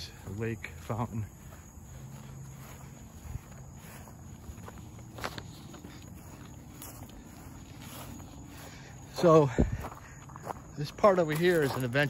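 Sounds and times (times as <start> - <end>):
footsteps on grass and gravel: 0.0 - 12.0.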